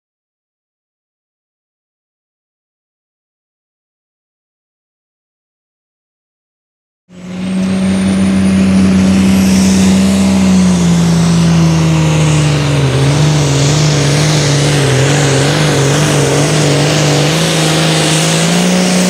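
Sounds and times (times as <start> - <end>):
diesel tractor engine straining: 7.1 - 19.0.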